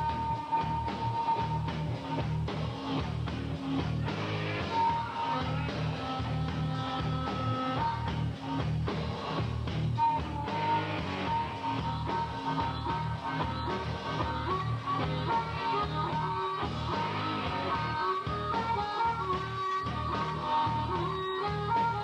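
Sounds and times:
live rock band playing: 0.0 - 22.0
sustained high guitar lead: 0.0 - 22.0.

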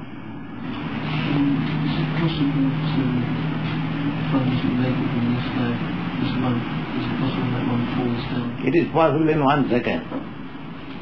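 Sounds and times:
tape hiss: 0.0 - 11.0
distant person speaking: 0.8 - 10.2.

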